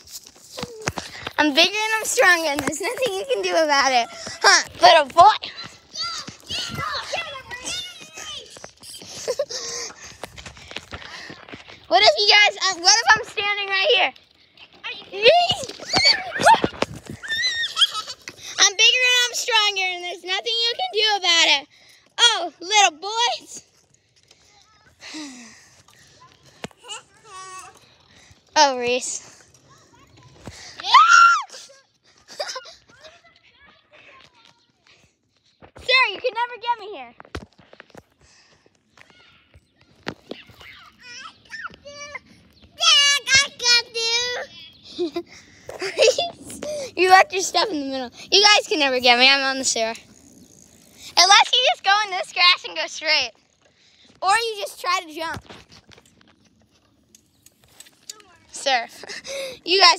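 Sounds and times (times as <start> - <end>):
children shouting and squealing: 0.0 - 28.2, 29.0 - 35.0, 38.9 - 48.9
children squealing: 15.4 - 18.4, 29.7 - 31.8.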